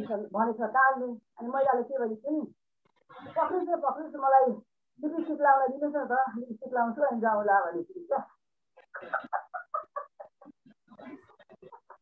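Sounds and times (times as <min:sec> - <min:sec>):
woman laughing: 0:08.8 - 0:12.0.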